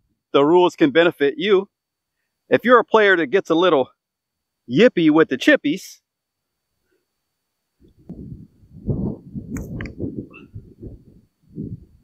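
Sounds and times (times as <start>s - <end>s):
wind buffeting microphone: 7.8s - 12.0s.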